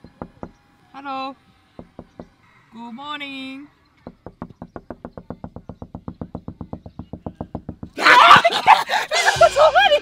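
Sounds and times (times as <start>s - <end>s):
hand knocking on window glass: 0.0s - 0.6s, 1.8s - 2.4s, 4.0s - 8.0s.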